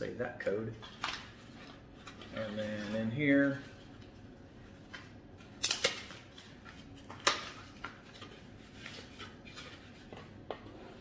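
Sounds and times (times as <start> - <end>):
paper rustles: 6.0 - 10.3.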